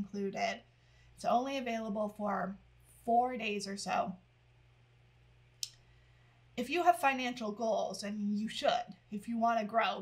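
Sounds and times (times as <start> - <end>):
woman speaking: 0.0 - 4.2, 6.6 - 10.0.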